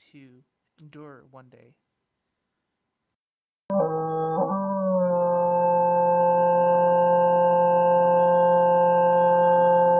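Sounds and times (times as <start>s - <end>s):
sustained synthesizer chord: 3.7s - 9.9s.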